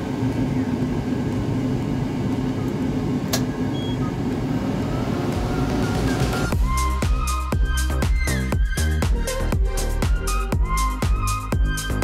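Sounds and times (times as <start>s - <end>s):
laser cutter fans humming: 0.0s - 6.6s.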